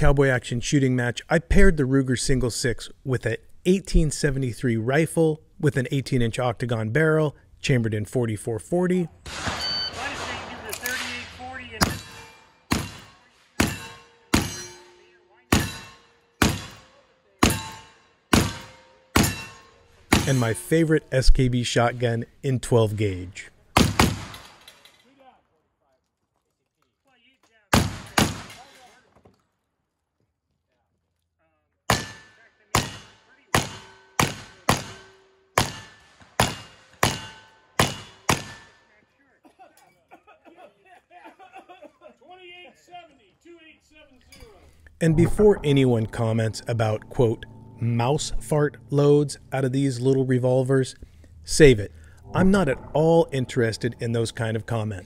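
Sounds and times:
rifle shots: 9.3 - 14.6, 23.8 - 24.6, 27.7 - 28.6
steel target ringing: 9.3 - 20.9, 45.3 - 54.6
pistol shots: 11.8 - 14.6, 15.5 - 19.4, 23.8 - 24.6, 27.7 - 28.6, 31.9 - 38.8.

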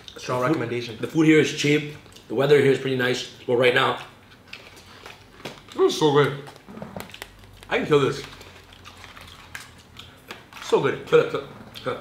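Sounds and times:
quiet chewing: 1.9 - 2.4, 3.3 - 12.0.

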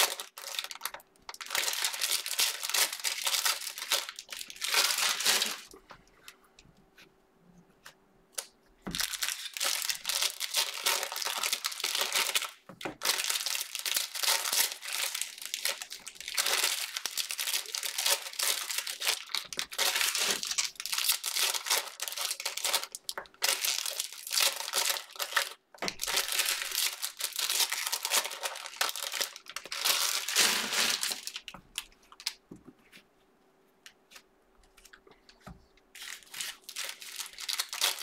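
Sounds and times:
cellophane wrappers crinkling: 0.0 - 6.4, 8.3 - 32.4, 34.1 - 38.0.

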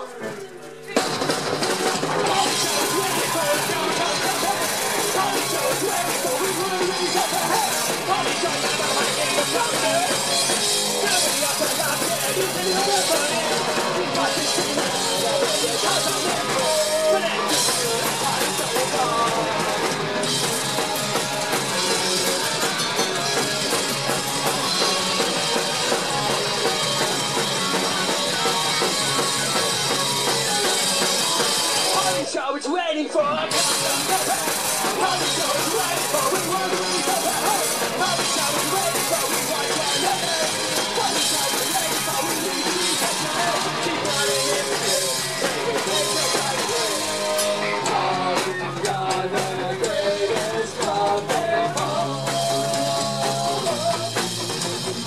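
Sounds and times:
bass guitar: 0.0 - 32.3, 33.2 - 55.0
drum kit: 0.0 - 32.3, 33.3 - 55.0
electric guitars: 0.0 - 32.3, 33.2 - 55.0
lead vocal singing: 2.0 - 55.0.

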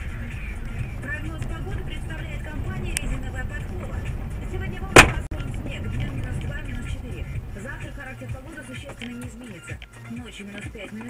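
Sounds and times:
car engine and road rumble: 0.0 - 11.0
sharp loud knock: 5.0 - 5.3.

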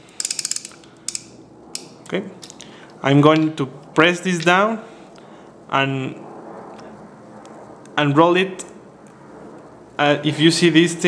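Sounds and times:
ratcheting dial clicks: 0.0 - 2.6.

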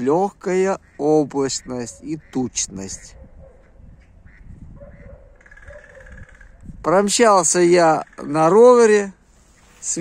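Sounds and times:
faint duck calls: 0.0 - 6.8.

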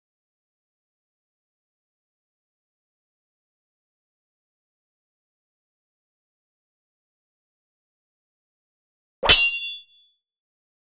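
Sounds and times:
sharp metallic clang: 9.2 - 10.0.

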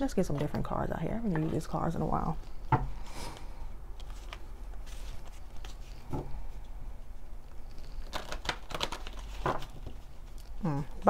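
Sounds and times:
cards being shuffled: 4.0 - 6.7, 7.8 - 10.4.

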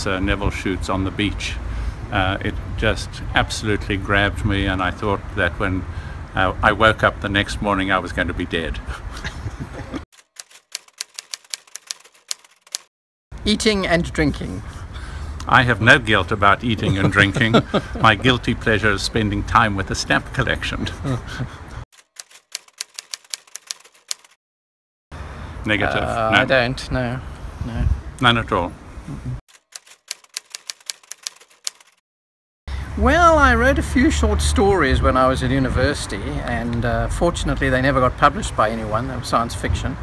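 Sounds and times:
typewriter key clacks: 10.2 - 12.9, 22.1 - 24.4, 29.6 - 32.0.

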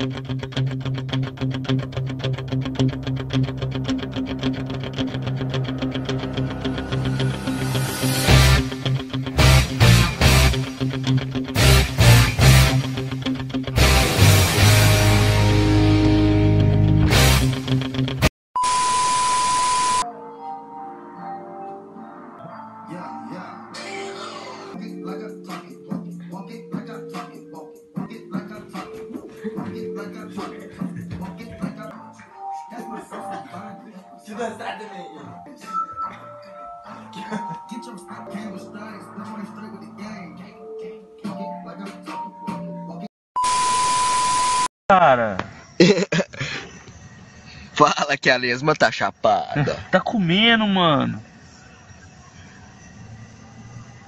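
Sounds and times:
loud music: 0.0 - 18.3
soft music: 2.0 - 17.6, 20.0 - 43.1
high test-tone beep: 18.6 - 20.0, 43.4 - 44.7.

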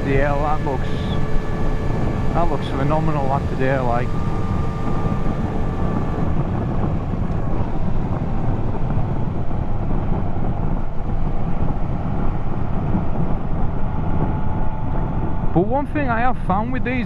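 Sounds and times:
motorcycle engine cruising: 0.0 - 15.8
wind rushing on microphone: 0.0 - 17.0.

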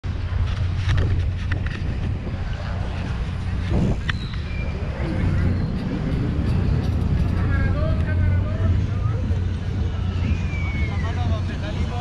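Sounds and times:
wind rumbling on microphone: 0.0 - 12.0
bike clicks and rattles: 0.2 - 8.6.

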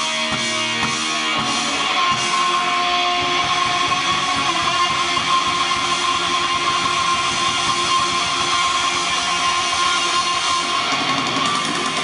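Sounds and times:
electric guitar: 0.0 - 12.0
live rock band playing: 0.0 - 12.0.

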